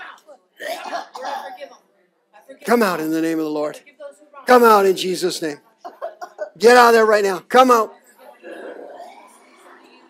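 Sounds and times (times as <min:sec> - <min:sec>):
person clearing throat: 0:00.6 - 0:01.6, 0:08.4 - 0:09.3
person coughing: 0:00.6 - 0:01.6.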